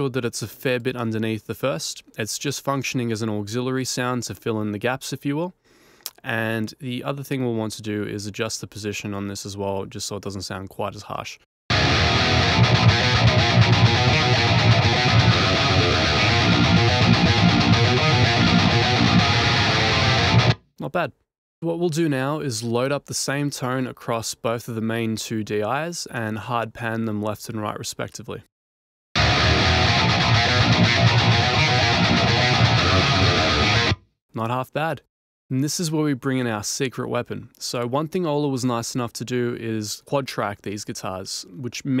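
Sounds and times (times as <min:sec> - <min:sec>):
distorted metal guitar riff: 0:11.7 - 0:20.6, 0:29.2 - 0:34.0.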